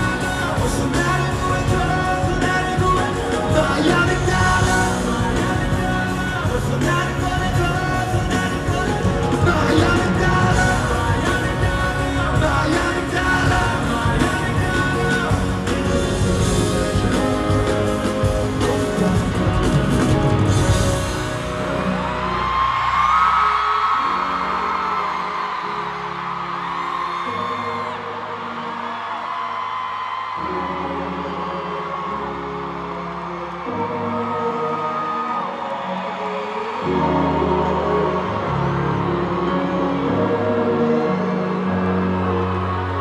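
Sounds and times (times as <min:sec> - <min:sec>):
fans whooping and screaming: 0:00.0 - 0:43.0
slow dark concert music: 0:00.0 - 0:43.0.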